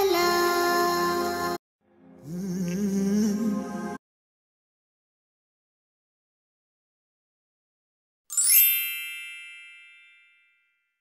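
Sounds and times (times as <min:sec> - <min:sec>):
bell-like ding chime: 0:08.3 - 0:11.0.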